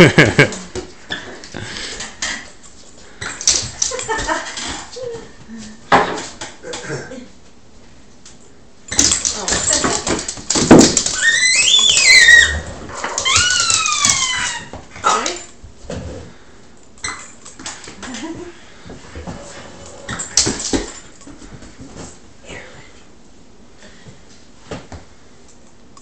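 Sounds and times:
dog whining: 0:11.1 - 0:14.8.

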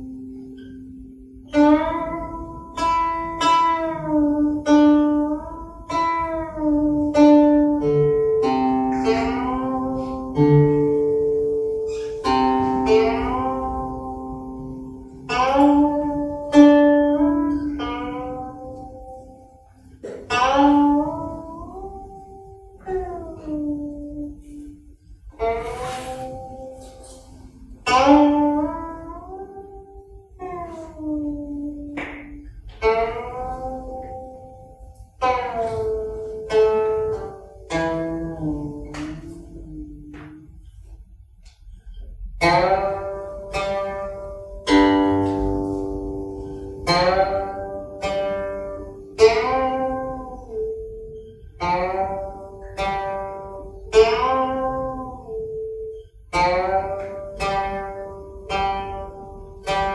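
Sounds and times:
zither plucked notes: 0:00.0 - 0:59.9.

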